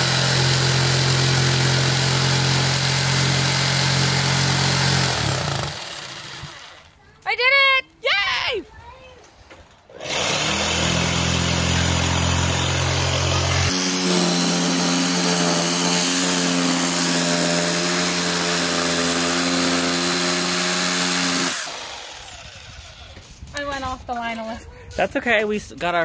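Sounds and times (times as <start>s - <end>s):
jigsaw cutting board: 0.0s - 6.9s, 9.9s - 23.2s.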